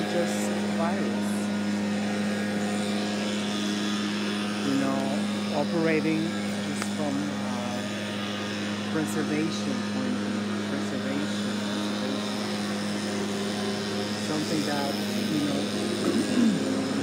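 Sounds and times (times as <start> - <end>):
woman speaking: 0.0 - 1.5, 4.6 - 8.0, 8.9 - 11.5, 14.2 - 16.7
low mechanical hum: 0.0 - 17.0.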